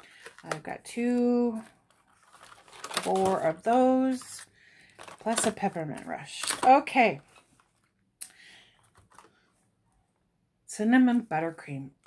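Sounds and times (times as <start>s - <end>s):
plastic packs clicking: 0.0s - 7.9s
plastic packaging rustling: 0.0s - 9.5s.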